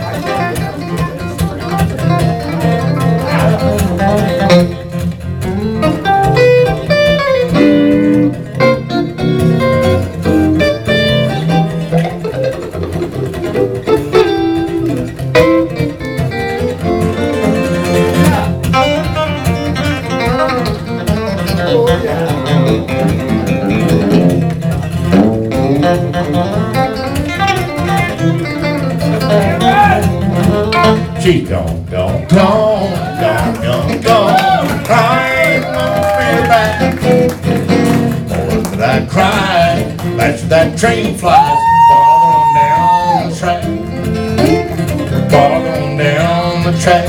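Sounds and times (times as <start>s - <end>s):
acoustic guitar strumming: 0.0s - 47.0s
person singing: 32.3s - 37.2s, 38.7s - 47.0s.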